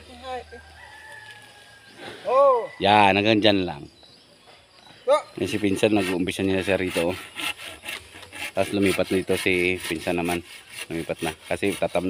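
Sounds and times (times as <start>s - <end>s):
rooster crowing: 0.2s - 3.0s.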